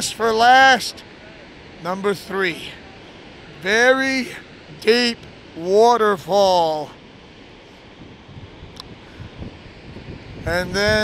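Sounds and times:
waterfall roaring: 0.0 - 11.0
wind buffeting microphone: 7.5 - 11.0.

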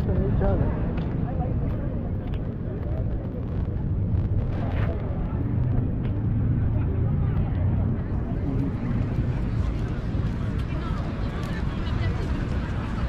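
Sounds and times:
faint voices: 0.0 - 13.0
low rumble: 0.0 - 13.0.

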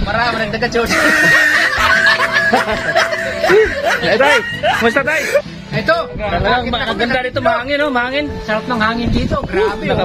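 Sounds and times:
men talking: 0.0 - 10.0
men laughing: 0.8 - 5.5.

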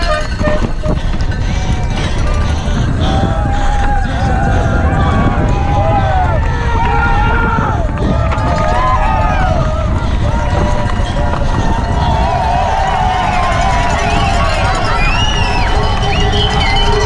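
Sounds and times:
mountain bike rumbling on dirt: 0.0 - 17.0
spectators shouting and cheering: 0.0 - 17.0
wind rush on camera: 0.0 - 17.0.

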